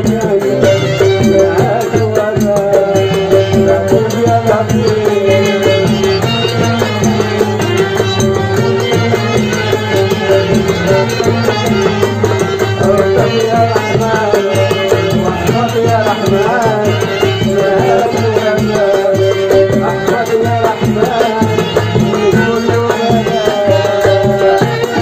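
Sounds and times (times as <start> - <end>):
ornamented violin melody: 0.6 - 25.0.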